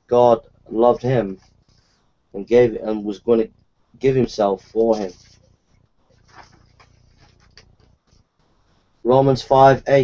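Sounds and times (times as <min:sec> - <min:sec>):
book rustling and knocking: 0:06.1 - 0:08.2.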